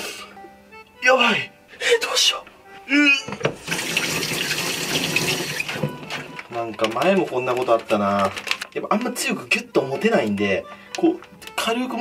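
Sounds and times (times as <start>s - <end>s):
tap running into sink: 3.3s - 6.4s
hands rinsed under water: 3.6s - 6.4s.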